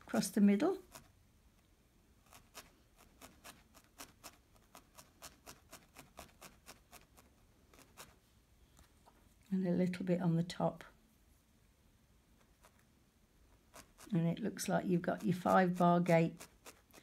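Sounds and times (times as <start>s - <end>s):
felting needle stabbing wool: 2.2s - 8.2s, 13.6s - 17.0s.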